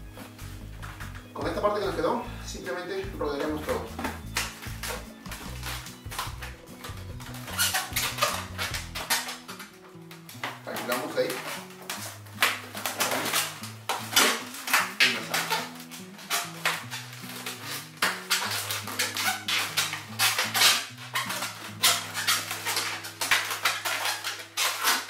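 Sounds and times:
background music with bass line: 0:00.0 - 0:09.5
balloons squeaking and rubbing: 0:00.0 - 0:25.0.

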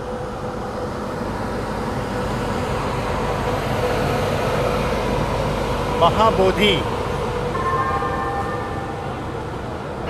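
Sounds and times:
low rumble of trains: 0:00.0 - 0:10.0.

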